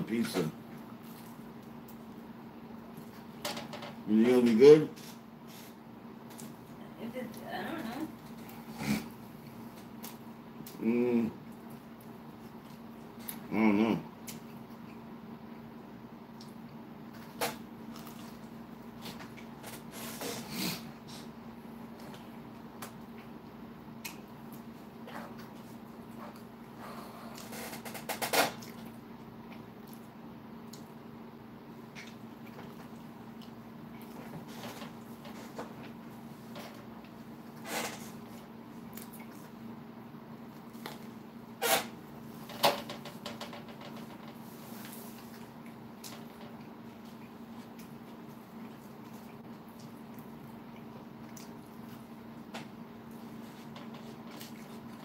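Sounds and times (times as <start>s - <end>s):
steady low hum: 0.0s - 55.0s
man eating mouth sounds: 8.1s - 15.1s, 16.2s - 39.8s, 43.9s - 55.0s
man humming mm: 10.7s - 11.5s, 13.3s - 14.2s.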